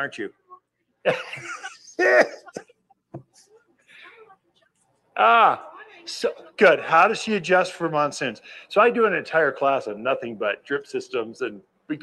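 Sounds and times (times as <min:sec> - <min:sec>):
man laughing: 0:01.1 - 0:02.6.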